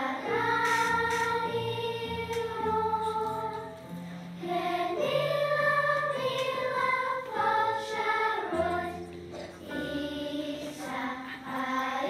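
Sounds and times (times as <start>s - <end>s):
children's choir singing: 0.0s - 12.0s
keyboard accompaniment: 0.0s - 12.0s.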